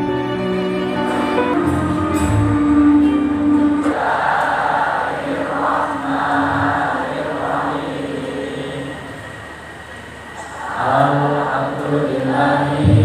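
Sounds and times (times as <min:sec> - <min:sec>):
choir singing over sound system: 0:00.0 - 0:13.0.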